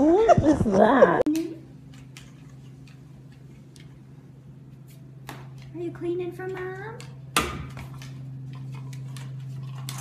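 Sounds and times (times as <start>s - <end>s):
dog claws clicking on wood floor: 6.5s - 10.0s.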